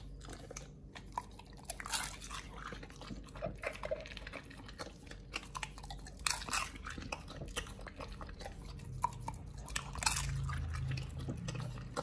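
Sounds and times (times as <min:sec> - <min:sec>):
dog chewing wet meat: 0:00.0 - 0:12.0.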